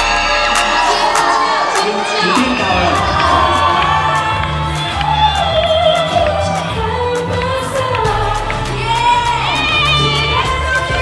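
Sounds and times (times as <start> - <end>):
band with bass and cymbals: 0.0 - 11.0
crowd cheering: 0.0 - 11.0
woman singing pop song: 0.0 - 11.0.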